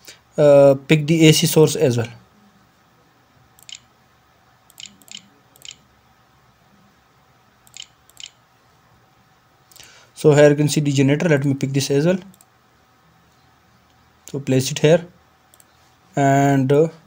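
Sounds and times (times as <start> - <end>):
computer mouse clicks: 3.6 - 3.9, 4.7 - 5.8, 7.6 - 8.4, 12.2 - 12.5, 15.5 - 15.8.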